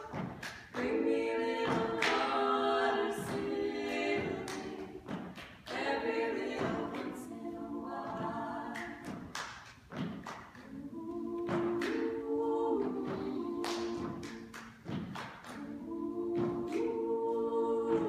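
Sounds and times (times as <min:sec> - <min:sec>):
women singing a cappella harmony: 0:00.0 - 0:09.6, 0:10.4 - 0:18.0
body percussion chest pats and claps: 0:00.0 - 0:17.0.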